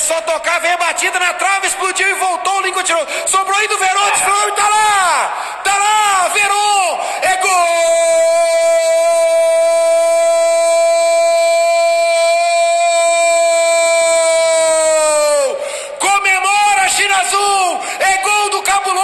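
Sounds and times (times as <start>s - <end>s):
commentator shouting excitedly: 0.0s - 19.0s.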